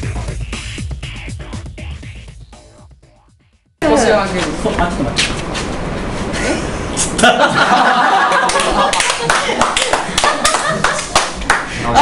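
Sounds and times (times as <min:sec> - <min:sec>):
people applauding: 0:08.1 - 0:12.0.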